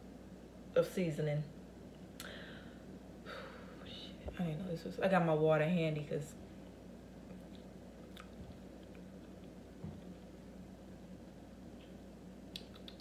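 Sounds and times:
low steady hum: 0.0 - 13.0
person chewing: 7.4 - 9.6.

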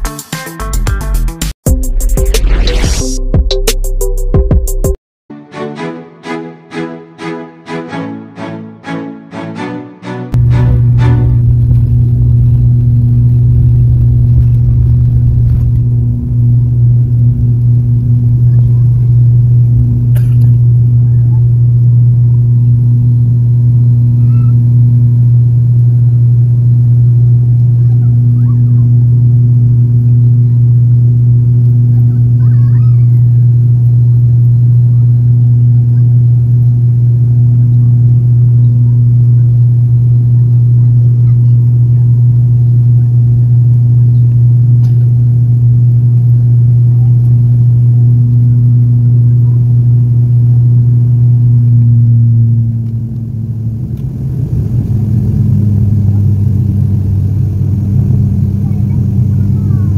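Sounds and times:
propeller engine drone: 10.3 - 59.9.

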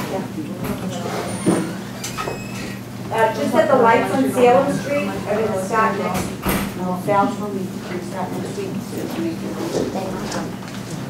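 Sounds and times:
murmur of voices: 0.0 - 11.0
steady hum: 0.0 - 11.0.

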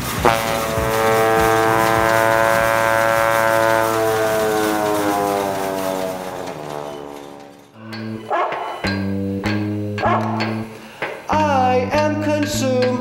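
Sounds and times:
garden hose horn note: 0.0 - 8.5.

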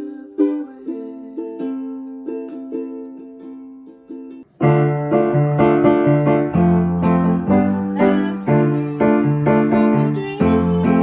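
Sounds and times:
ukulele strumming chords: 0.0 - 11.0.

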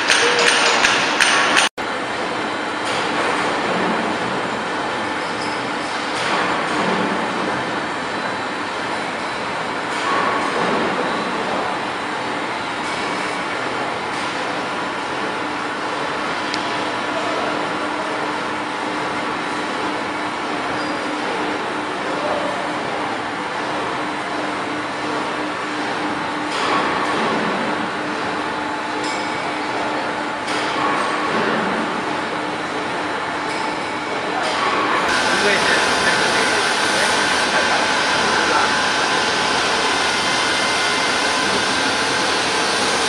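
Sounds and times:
bread production line machinery: 0.0 - 43.0.

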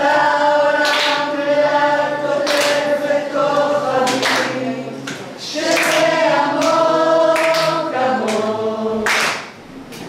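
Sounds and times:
group singing unaccompanied: 0.0 - 9.7.

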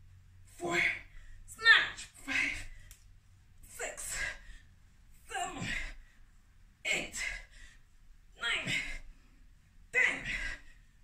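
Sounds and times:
woman's forceful breaths: 3.6 - 8.0, 10.2 - 11.0.

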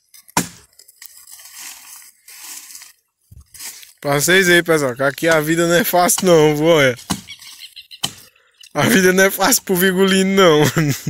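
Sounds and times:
twigs and branches crunching: 0.0 - 9.2
sharp wood crack: 0.1 - 1.0, 5.0 - 8.3.

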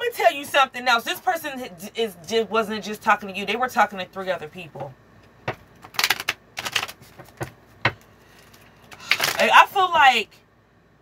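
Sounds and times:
cards shuffling: 5.5 - 9.5.

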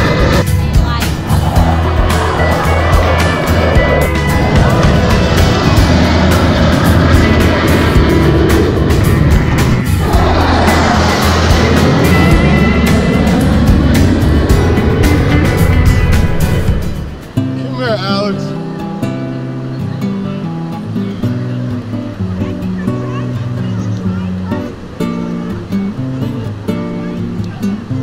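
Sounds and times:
fighter jets flying overhead: 0.0 - 17.6
music with steady beat: 0.0 - 17.6.

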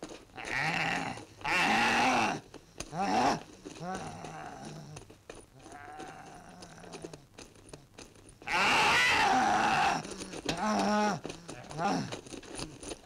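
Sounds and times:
wavering animal-like cries: 0.4 - 5.0, 5.6 - 7.2, 8.5 - 12.8.

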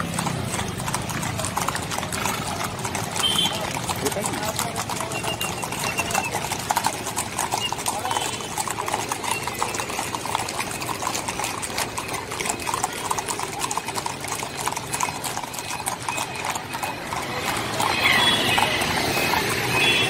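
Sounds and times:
horse hooves on pavement: 0.0 - 20.0.

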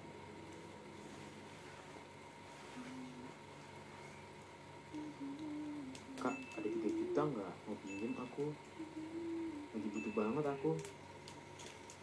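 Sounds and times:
woman humming: 2.6 - 3.8, 4.9 - 10.9.

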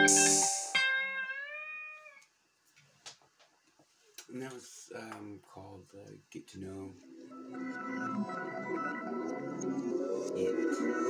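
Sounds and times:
electric guitar note bending: 0.0 - 1.5.

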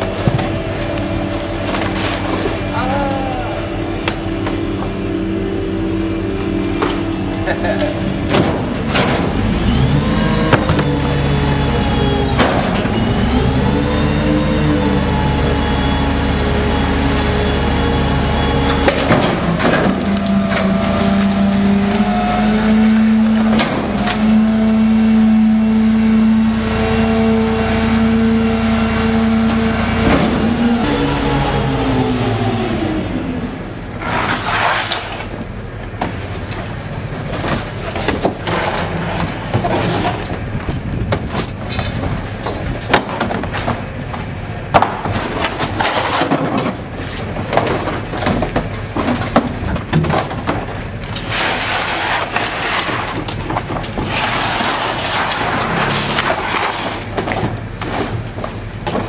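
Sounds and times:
trash rattling into hopper: 0.0 - 5.2, 6.0 - 59.0
garbage truck engine revving: 0.0 - 59.0.

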